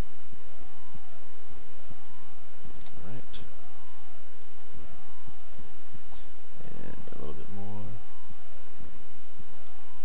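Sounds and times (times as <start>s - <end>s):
loud steady background noise: 0.0s - 10.0s.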